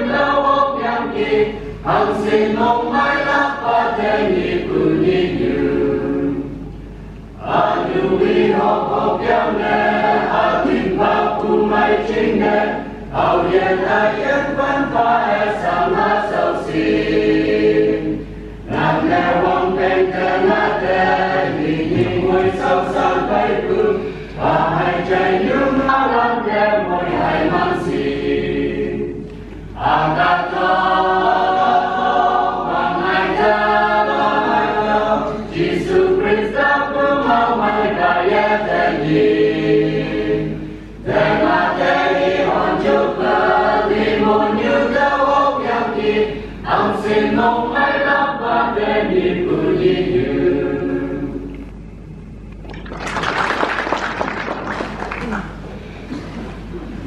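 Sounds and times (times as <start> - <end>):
mixed choir singing a hymn: 0.0 - 6.7, 7.4 - 51.5.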